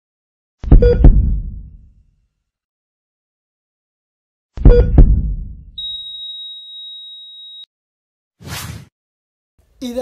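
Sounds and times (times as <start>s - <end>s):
heart monitor flatline tone: 0.7s - 1.3s, 5.8s - 7.6s.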